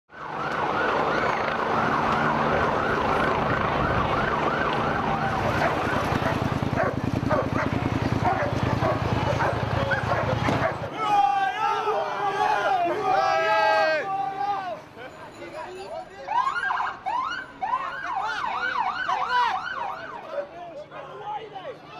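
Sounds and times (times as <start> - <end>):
wavering emergency siren: 0.1 - 10.9, 16.0 - 20.4
street noise: 0.1 - 21.9
heavy vehicle engine: 0.6 - 10.9
people shouting: 8.5 - 14.9.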